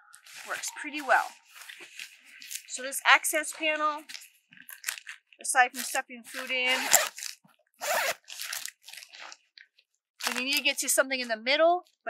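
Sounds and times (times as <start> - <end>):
nylon fabric rustling: 0.2 - 9.4.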